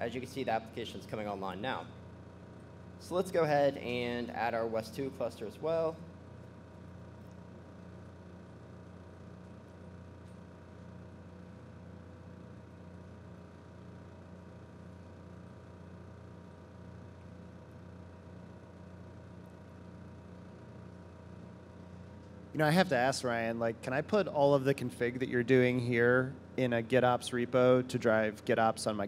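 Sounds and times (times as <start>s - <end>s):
room tone hum: 0.0s - 29.0s.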